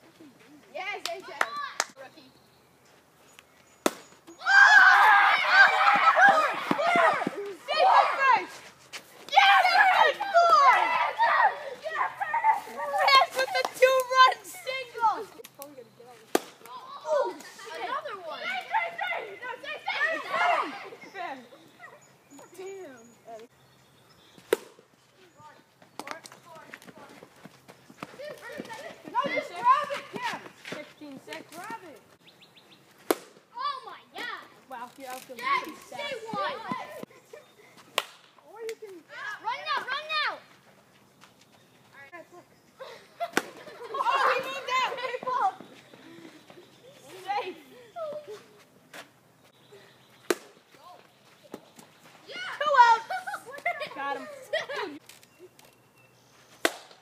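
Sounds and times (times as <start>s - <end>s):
boys shouting: 4.3s - 8.6s, 9.3s - 15.4s, 16.7s - 22.0s, 28.2s - 30.4s, 35.4s - 37.1s, 39.0s - 40.5s, 42.8s - 45.7s, 52.3s - 54.9s.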